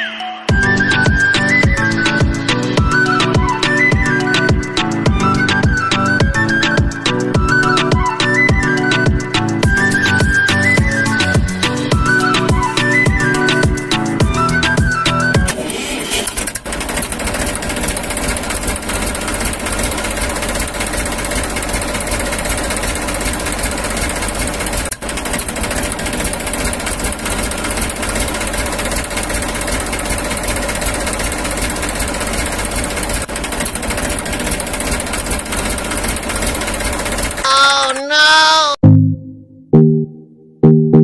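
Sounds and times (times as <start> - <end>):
motor running with rattle: 15.5 - 37.5.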